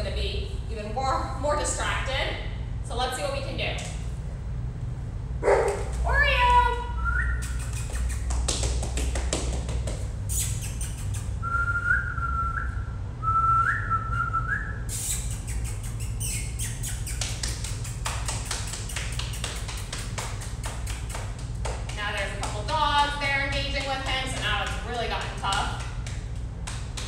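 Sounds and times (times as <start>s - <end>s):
steady low hum: 0.0s - 27.0s
person whistling: 11.4s - 15.6s.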